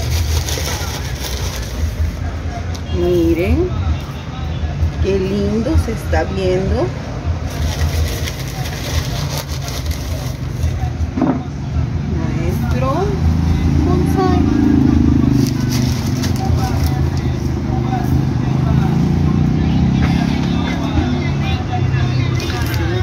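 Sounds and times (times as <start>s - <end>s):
faint voices: 0.0s - 23.0s
motor vehicle engine rumble: 0.0s - 23.0s.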